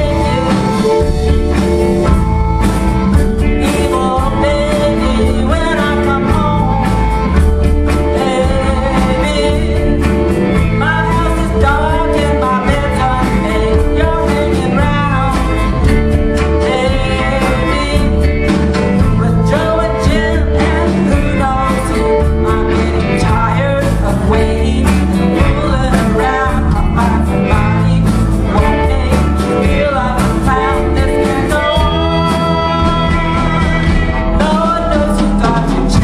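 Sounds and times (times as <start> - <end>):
amplified harmonica: 0.0 - 36.0
blues band playing: 0.0 - 36.0.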